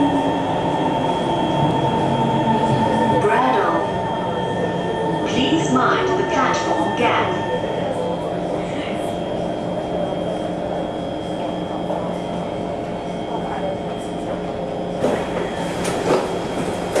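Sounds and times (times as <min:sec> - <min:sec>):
train rumble with high tone: 0:00.0 - 0:17.0.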